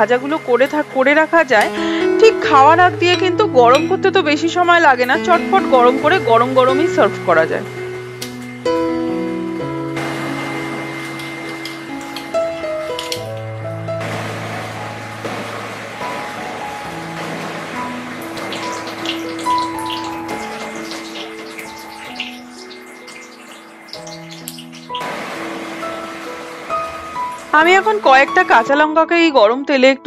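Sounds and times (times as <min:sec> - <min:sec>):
background music: 0:00.0 - 0:30.0
fritters sizzling in hot oil: 0:14.3 - 0:28.6.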